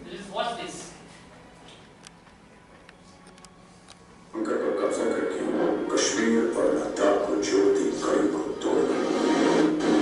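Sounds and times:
music through a speaker: 0:01.1 - 0:10.0
voice over music: 0:04.3 - 0:10.0.

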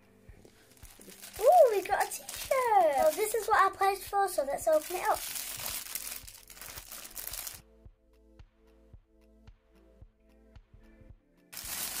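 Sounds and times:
quiet background music: 0:00.0 - 0:12.0
plastic packaging crinkling and tearing: 0:00.6 - 0:07.6, 0:11.6 - 0:12.0.

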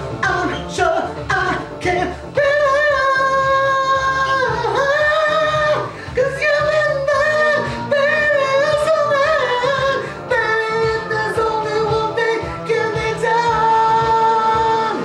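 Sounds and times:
high voice singing long notes: 0:00.0 - 0:15.0
r and b backing track: 0:00.0 - 0:15.0.

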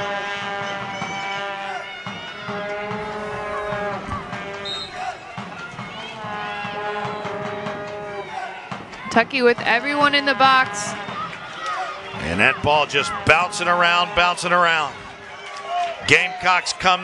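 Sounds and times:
people shouting: 0:00.2 - 0:17.0.

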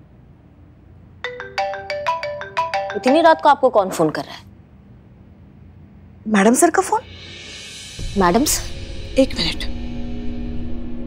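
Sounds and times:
phone ringtone melody: 0:01.2 - 0:03.6.

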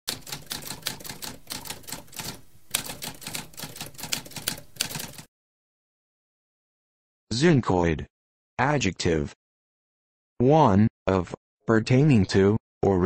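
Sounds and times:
typewriter keystroke clicks: 0:00.1 - 0:05.3.

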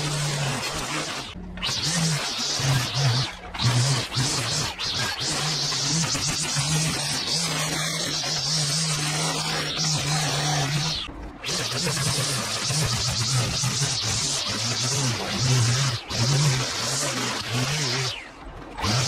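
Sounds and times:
line trimmer cutting grass: 0:00.0 - 0:19.0.

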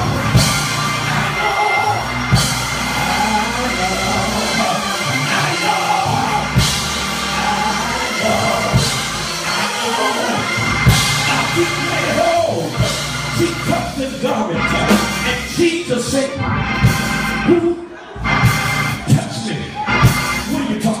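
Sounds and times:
drum kit: 0:00.0 - 0:15.8, 0:16.8 - 0:17.6, 0:19.9 - 0:21.0
sustained keyboard chords: 0:00.0 - 0:21.0.

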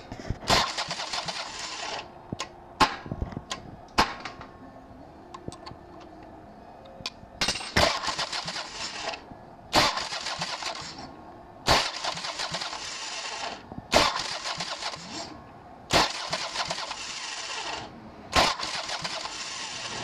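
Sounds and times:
motorcycle starter motor cranking: 0:00.5 - 0:02.0, 0:11.8 - 0:15.3, 0:16.0 - 0:20.0.

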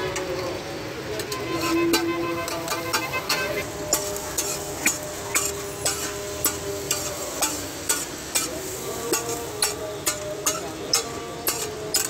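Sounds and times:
food sizzling: 0:00.0 - 0:12.0.

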